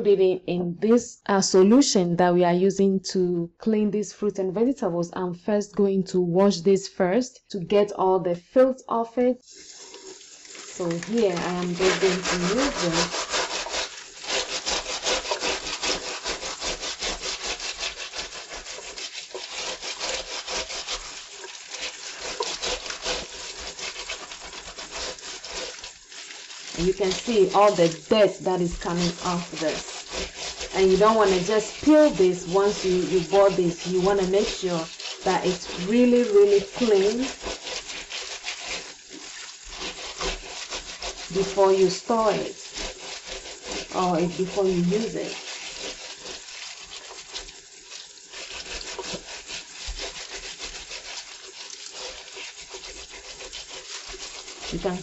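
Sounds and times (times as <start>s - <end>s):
brush scrubbing pineapple skin: 9.4s - 55.0s
tap water running: 9.4s - 55.0s.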